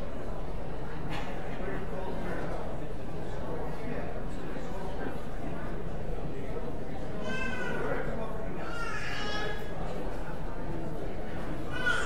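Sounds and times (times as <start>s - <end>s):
murmur of people chatting: 0.0s - 12.0s.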